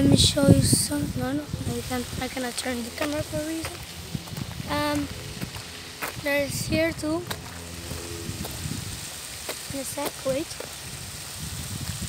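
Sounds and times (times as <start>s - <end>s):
boy's voice: 0.0s - 3.8s, 4.6s - 5.2s, 6.1s - 7.4s, 9.7s - 10.6s
outdoor hiss: 0.0s - 12.0s.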